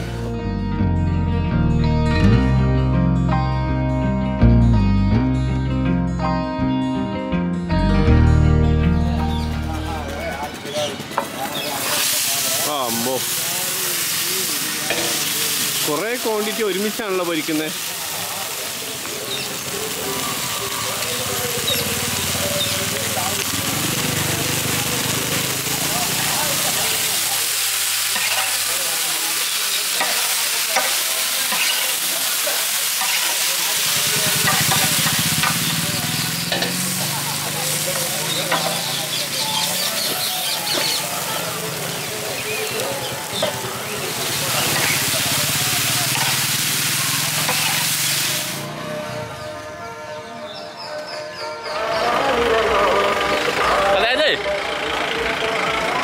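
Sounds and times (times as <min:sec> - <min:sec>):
fish sizzling in oil: 0:10.6 - 0:48.8
spatula turning food: 0:21.6 - 0:48.2.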